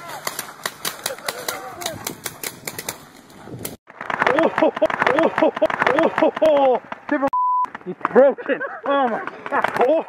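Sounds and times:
censor bleep: 0:07.4 - 0:07.7.

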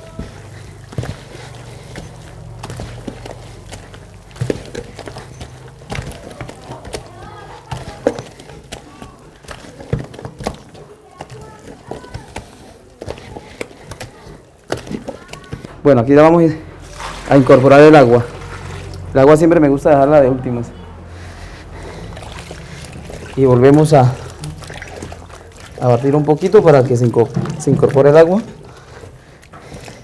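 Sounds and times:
hands squelching wet dough: 0:00.0 - 0:30.0
faint voices: 0:04.9 - 0:15.8.

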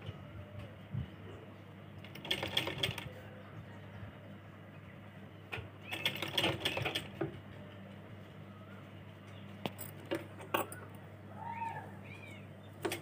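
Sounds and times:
sewing machine stitching: 0:05.9 - 0:07.1.

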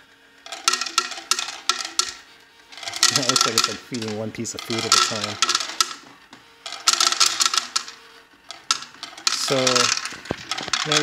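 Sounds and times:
faint motor hum: 0:00.0 - 0:11.0
kibble clicking and rattling: 0:00.5 - 0:06.0, 0:06.6 - 0:11.0.

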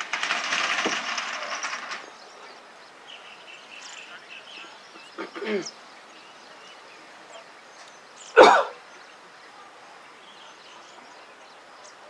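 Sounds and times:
person coughing: 0:05.2 - 0:05.7, 0:08.4 - 0:08.8.

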